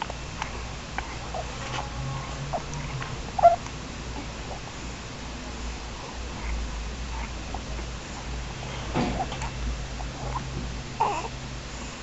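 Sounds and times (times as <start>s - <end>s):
baby squeaking: 3.4s - 3.6s.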